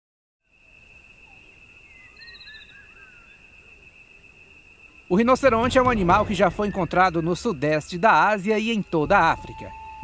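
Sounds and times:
high-pitched insect drone: 0.5 - 10.0.

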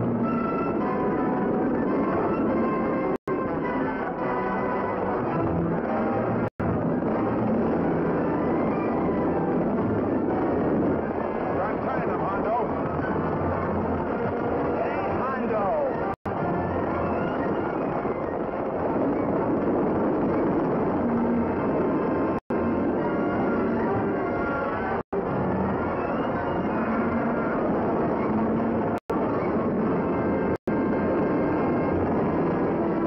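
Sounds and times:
orchestral film score: 0.0 - 33.0
voices: 10.6 - 13.2, 14.0 - 16.2.

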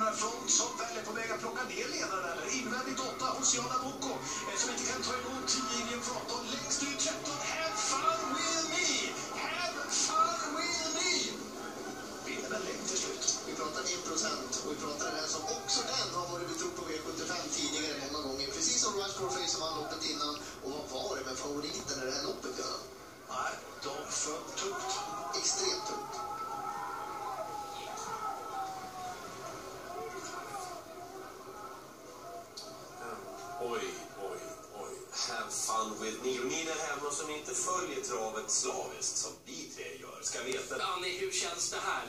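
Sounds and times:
race commentary from television: 0.0 - 42.0.

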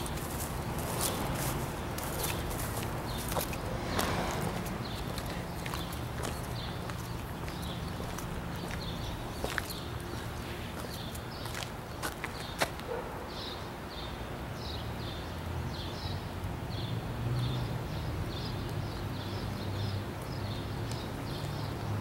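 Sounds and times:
footsteps outdoors: 0.0 - 14.0, 17.4 - 22.0.

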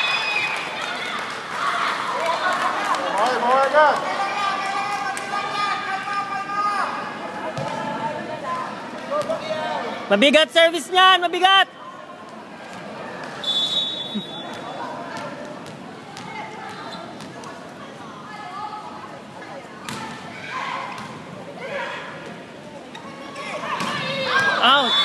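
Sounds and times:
short high whistle: 13.4 - 14.5.

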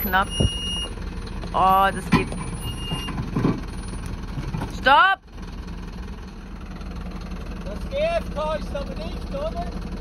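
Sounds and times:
diesel truck engine at low revs: 0.0 - 10.0.

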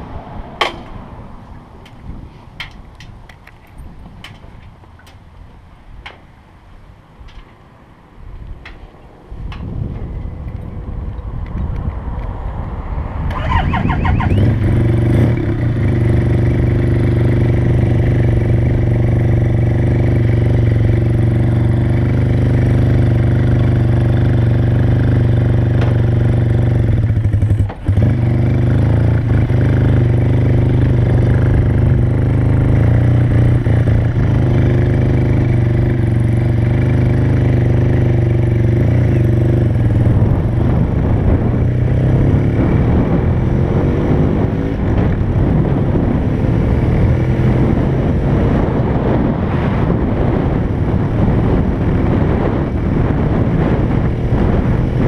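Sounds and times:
motorcycle engine running: 13.3 - 55.0.

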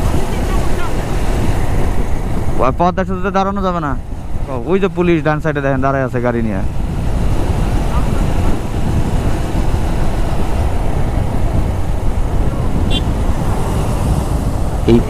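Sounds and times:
road noise: 0.0 - 15.0
wind rush: 0.0 - 15.0.

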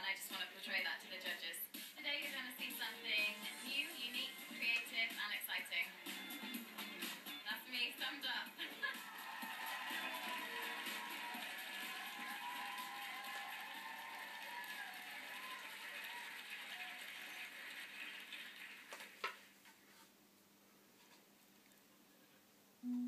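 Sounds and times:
television music: 0.0 - 19.6.

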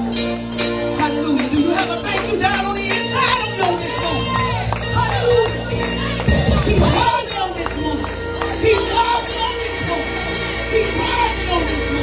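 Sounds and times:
church worship music: 0.0 - 12.0
congregation singing and calling out: 1.3 - 12.0.

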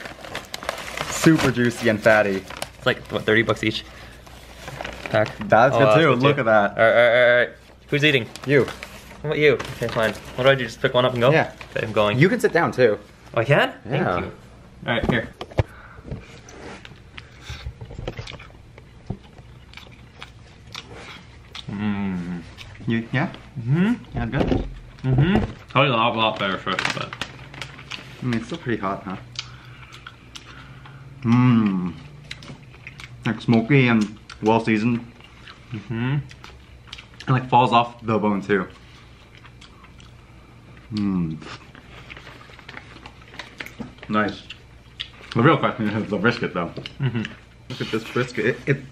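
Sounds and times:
paper crinkling: 0.0 - 6.2, 7.6 - 13.1, 25.6 - 29.0, 41.6 - 44.3
wet chewing and smacking: 16.8 - 21.8, 32.1 - 34.6, 39.2 - 45.4.

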